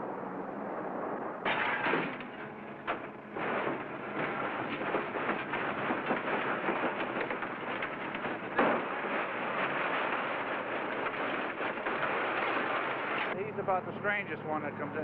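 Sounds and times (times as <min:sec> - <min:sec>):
metal crash: 0:01.4 - 0:13.4
scrap metal clattering: 0:01.5 - 0:13.4
man speaking: 0:13.4 - 0:15.0.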